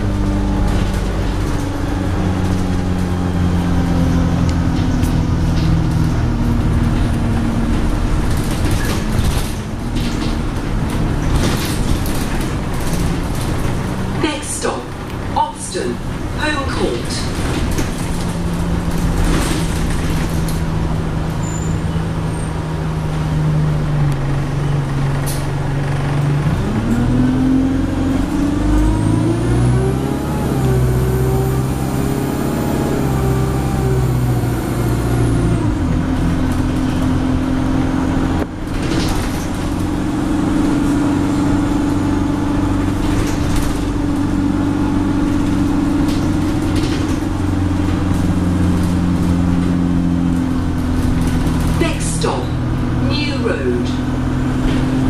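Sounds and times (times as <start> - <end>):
bus engine running: 0.0 - 55.0.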